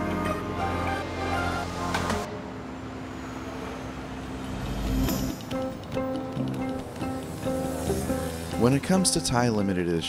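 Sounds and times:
city road traffic rumble: 0:00.0 - 0:10.0.

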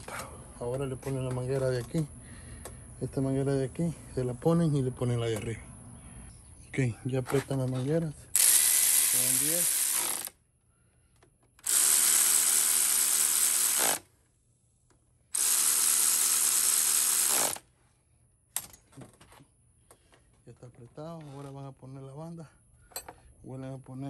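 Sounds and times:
cordless electric ratchet running: 0:08.4 - 0:10.4, 0:11.6 - 0:14.0, 0:15.4 - 0:17.6.

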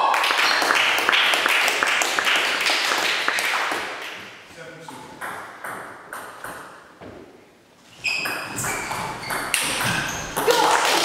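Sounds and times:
table tennis ball bouncing: 0:04.9 - 0:07.3, 0:08.2 - 0:11.0.

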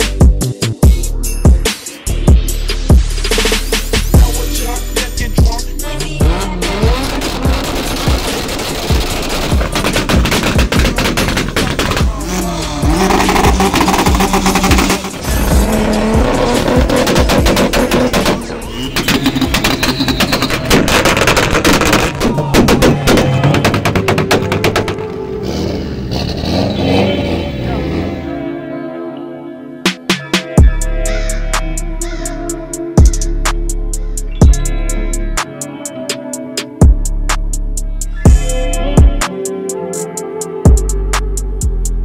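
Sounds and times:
background music: 0:00.0 - 0:42.0
car engines revving: 0:05.5 - 0:28.5
exhaust pops and bangs: 0:06.2 - 0:25.9.

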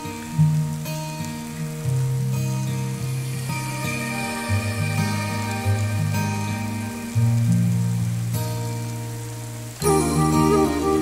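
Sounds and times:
steady rain: 0:00.0 - 0:11.0
slow instrumental pop music: 0:02.3 - 0:09.0, 0:09.6 - 0:11.0.

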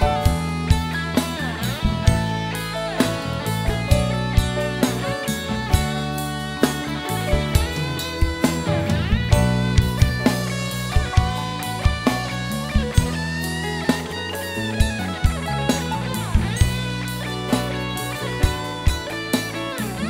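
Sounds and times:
bass guitar: 0:00.0 - 0:20.0
drum kit beat: 0:00.0 - 0:20.0
electric guitar lead: 0:00.0 - 0:20.0.

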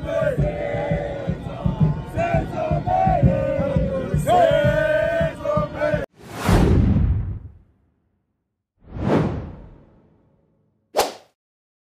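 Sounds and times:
whoosh sound effect: 0:08.8 - 0:10.1.

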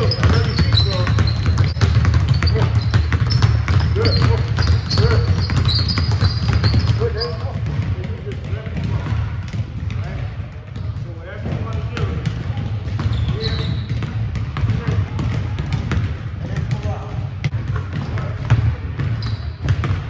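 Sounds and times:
voices talking: 0:00.0 - 0:14.0
basketballs bouncing on wooden floor: 0:00.0 - 0:20.0.

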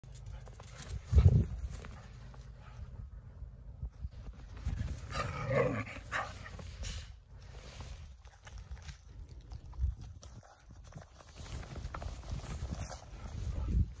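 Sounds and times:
steps and scuffles in snow: 0:10.3 - 0:14.0.

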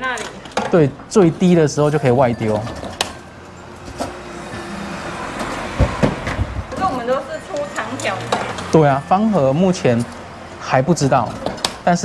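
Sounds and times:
road vehicle passing by: 0:01.2 - 0:12.0.

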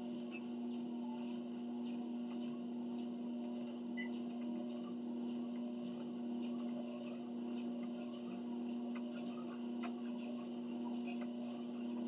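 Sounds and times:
footsteps on treadmill belt: 0:00.0 - 0:12.0
treadmill motor hum: 0:00.0 - 0:12.0.

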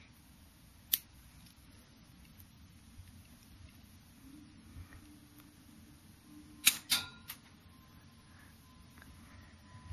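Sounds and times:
sharp click: 0:06.6 - 0:07.4.

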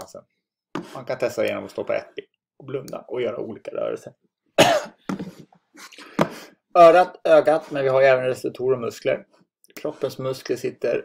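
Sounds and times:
person coughing: 0:04.6 - 0:05.4.

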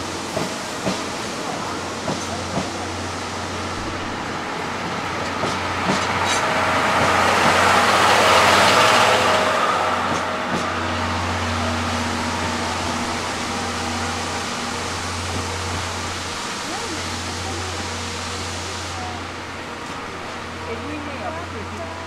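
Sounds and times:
train coaches rolling past: 0:00.0 - 0:22.0.

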